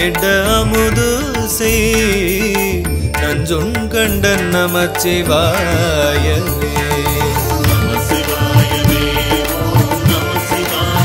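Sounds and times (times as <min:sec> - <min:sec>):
low drum beats: 0:00.0 - 0:11.0
steady drone: 0:04.0 - 0:11.0.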